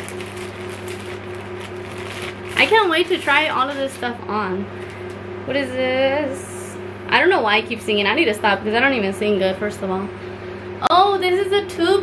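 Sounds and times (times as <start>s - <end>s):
plastic bag rustling and crinkling: 0.0s - 5.1s
steady low hum: 0.0s - 12.0s.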